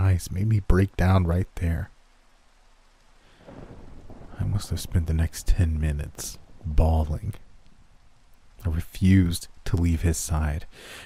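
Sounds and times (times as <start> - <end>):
narration: 0.0 - 2.0, 4.2 - 7.6, 8.5 - 11.0
low rumbling noise: 3.4 - 10.7.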